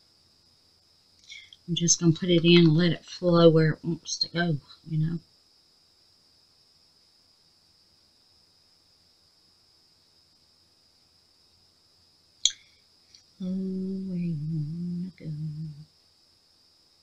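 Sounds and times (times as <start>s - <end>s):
faint high-pitched whine: 0.0s - 17.0s
woman humming a note: 13.4s - 15.9s.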